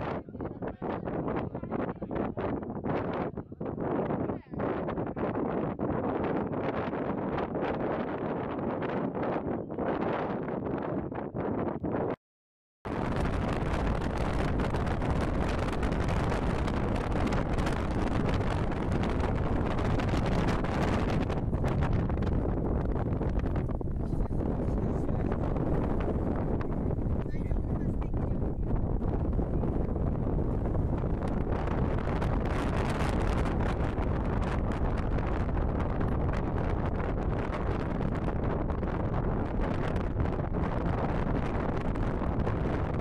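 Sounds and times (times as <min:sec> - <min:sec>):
wind buffeting microphone: 0:00.0 - 0:12.2, 0:12.9 - 0:43.0.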